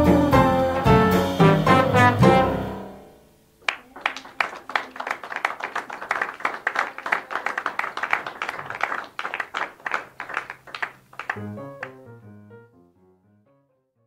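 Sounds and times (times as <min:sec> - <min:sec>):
small audience applauding: 0:03.6 - 0:12.1.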